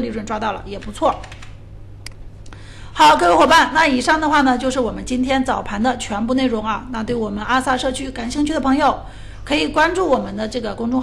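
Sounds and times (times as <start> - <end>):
low electrical hum: 0.0 - 11.0
computer control clicks: 0.8 - 2.2.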